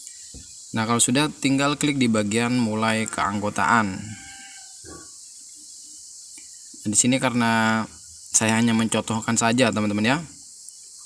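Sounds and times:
faint high-pitched hiss: 0:00.0 - 0:11.0.

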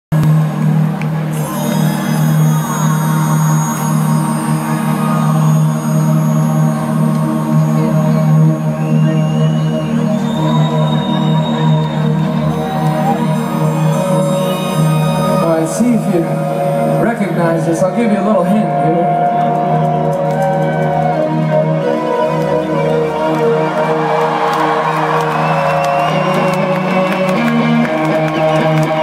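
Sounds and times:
synthesizer drone: 0:00.1 - 0:29.0.

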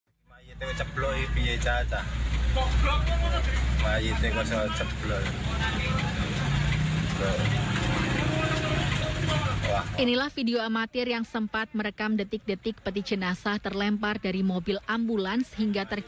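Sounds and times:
vehicle engine rumbling: 0:00.3 - 0:11.3
voices talking: 0:00.4 - 0:16.0.

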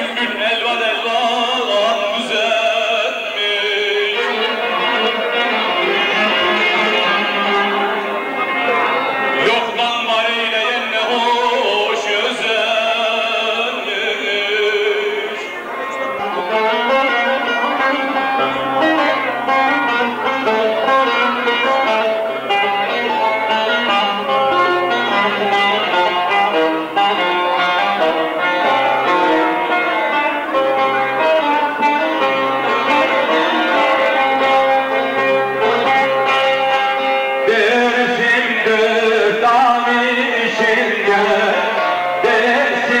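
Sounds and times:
plucked long-necked lute: 0:00.0 - 0:43.0.

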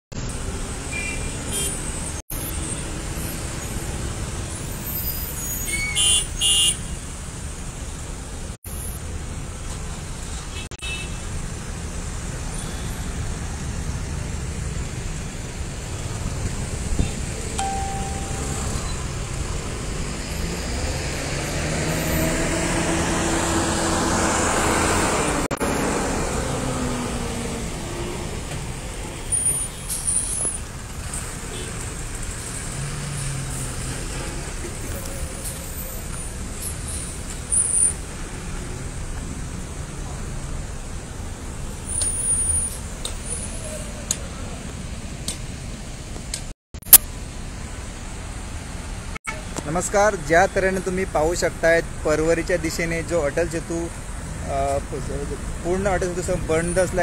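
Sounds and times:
traffic engines crawling: 0:00.1 - 0:57.0.

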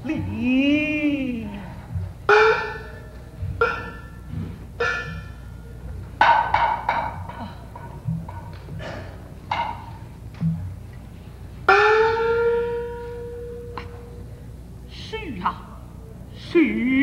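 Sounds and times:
small gong ringing: 0:02.3 - 0:06.6, 0:11.7 - 0:14.4.

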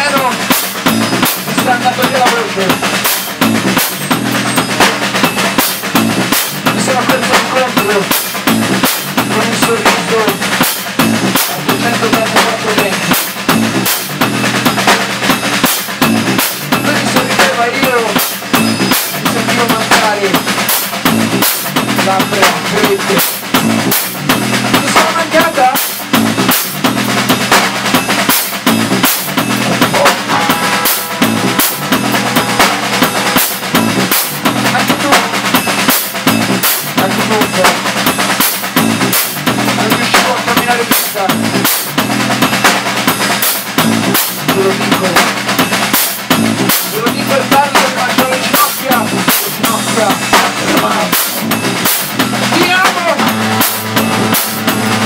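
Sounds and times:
bass guitar low notes: 0:00.0 - 0:45.2, 0:49.0 - 0:55.0
drum kit hit fast and hard: 0:00.0 - 0:55.0
live rock band playing: 0:00.0 - 0:55.0.

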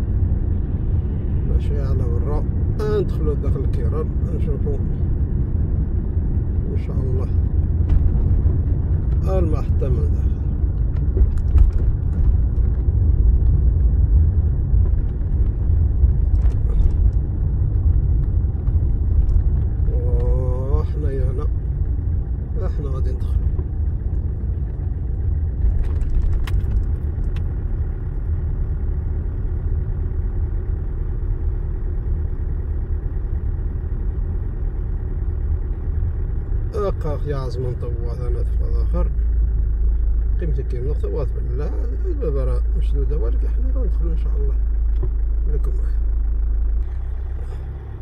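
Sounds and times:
car engine and tyre rumble: 0:00.0 - 0:48.0.

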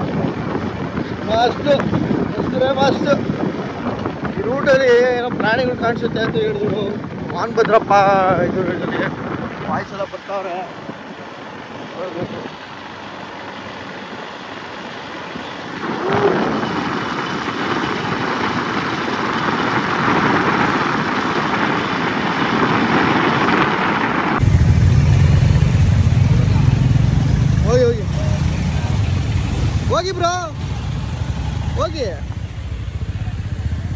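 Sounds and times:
group of motorcycles rumbling: 0:00.0 - 0:23.6, 0:24.3 - 0:33.9
motorcycle wind and road noise: 0:00.0 - 0:33.9.

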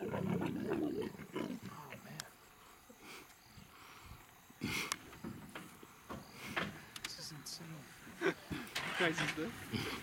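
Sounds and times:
leopard growling: 0:00.0 - 0:02.1, 0:09.6 - 0:10.0.

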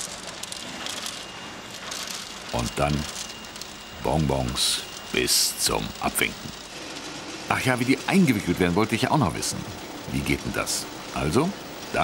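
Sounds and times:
high machine whine: 0:00.0 - 0:12.0.

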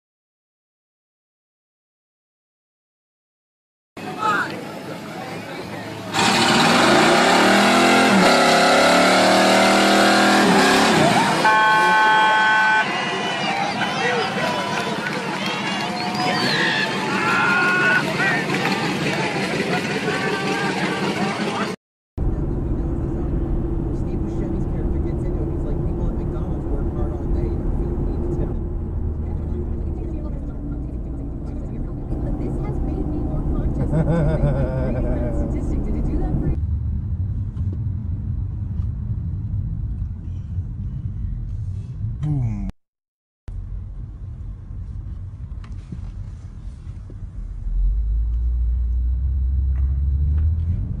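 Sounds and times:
car road and engine rumble: 0:04.0 - 0:42.7, 0:43.5 - 0:51.0
car burnout: 0:06.0 - 0:37.0
voices: 0:11.0 - 0:36.6.

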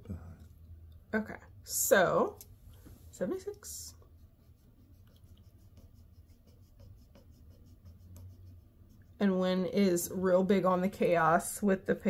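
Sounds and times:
pen scratching on paper: 0:03.6 - 0:09.5.

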